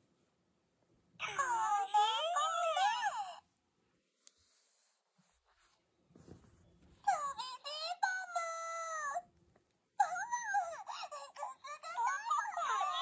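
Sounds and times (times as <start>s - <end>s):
toy speaker high-pitched voice lines: 1.2s - 3.4s, 7.0s - 9.2s, 10.0s - 13.0s
soft handling rustle: 4.0s - 7.0s.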